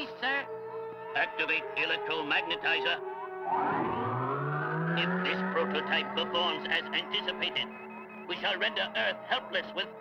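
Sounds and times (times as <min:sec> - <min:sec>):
machine whine rising in pitch: 0:03.4 - 0:08.3.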